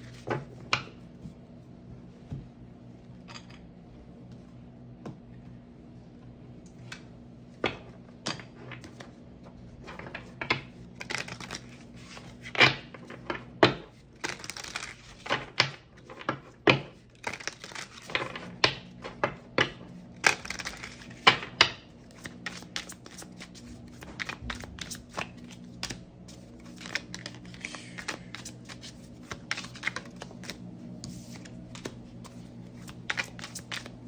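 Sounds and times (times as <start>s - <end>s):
deck of cards shuffling: 11.0s - 12.5s, 22.0s - 34.0s.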